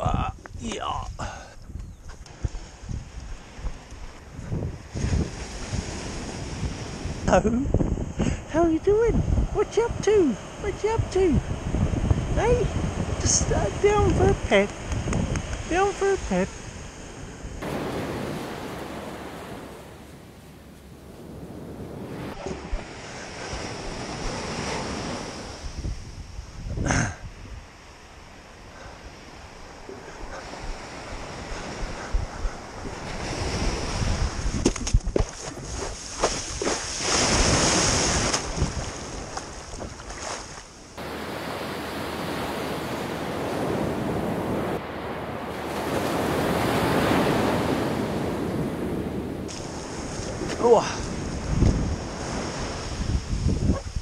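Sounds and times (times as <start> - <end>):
wind buffeting microphone: 0.0 - 27.8, 29.0 - 40.4, 41.0 - 54.0
waves washing up beach: 2.3 - 7.4, 8.0 - 26.6, 27.3 - 54.0.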